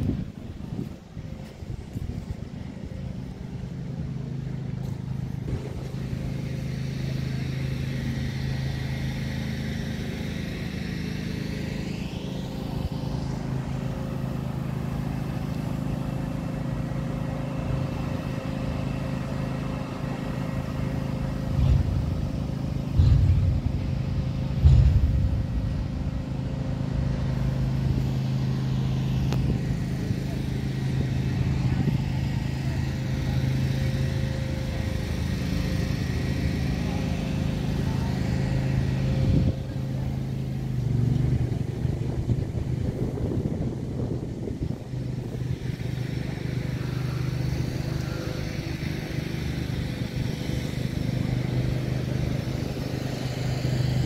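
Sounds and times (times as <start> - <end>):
low engine hum: 0.0 - 54.0
people talking: 4.2 - 10.7, 17.4 - 54.0
low bumps: 21.3 - 29.8.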